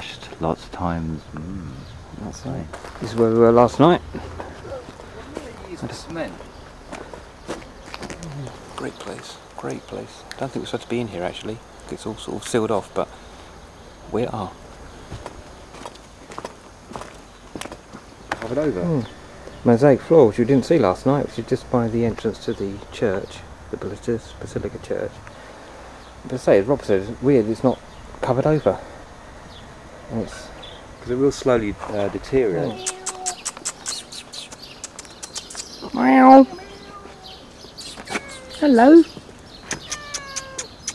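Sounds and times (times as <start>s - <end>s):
small birds chirping: 0.0s - 40.9s
footsteps on gravel: 2.7s - 3.3s, 4.1s - 8.3s, 15.1s - 18.5s
person saying wow: 32.6s - 33.4s.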